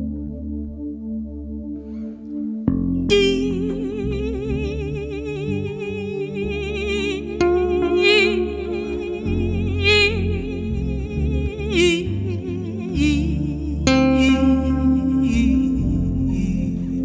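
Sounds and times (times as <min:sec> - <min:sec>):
electric bass: 0:00.0 - 0:17.0
keyboard chords: 0:00.0 - 0:17.0
woman singing with vibrato: 0:03.1 - 0:17.0.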